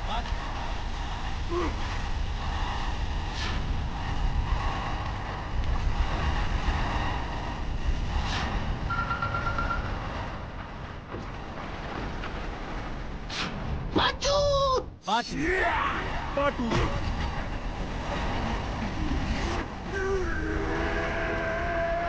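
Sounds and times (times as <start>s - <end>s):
whooshes: 0.3s - 13.9s
energy beam roar: 19.3s - 22.0s.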